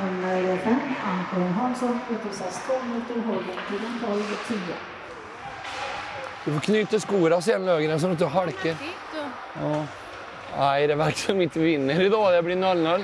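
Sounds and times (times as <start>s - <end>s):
indistinct talking: 0.0s - 13.0s.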